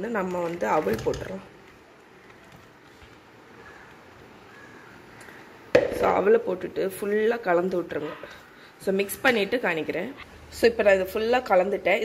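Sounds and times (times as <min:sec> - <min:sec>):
sharp knock: 0:05.8 - 0:06.2.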